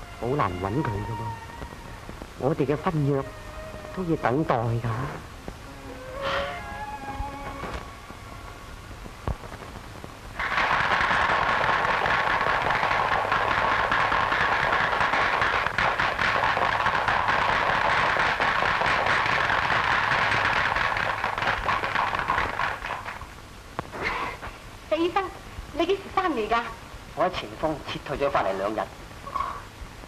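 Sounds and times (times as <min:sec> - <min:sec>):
crowd applauding: 0:10.4 - 0:23.3.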